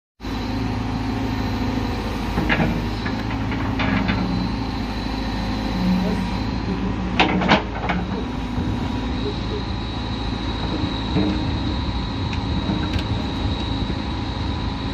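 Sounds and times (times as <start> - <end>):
diesel engine running: 0.2 - 14.9.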